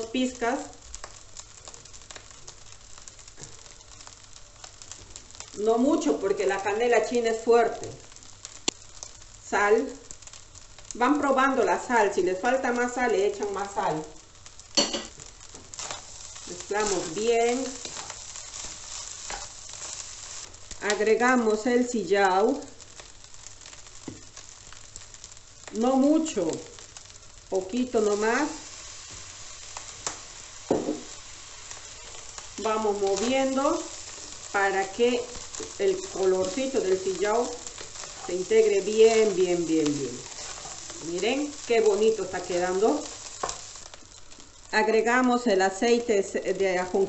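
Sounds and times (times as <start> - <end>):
food sizzling in a wok: 0.0 - 47.0.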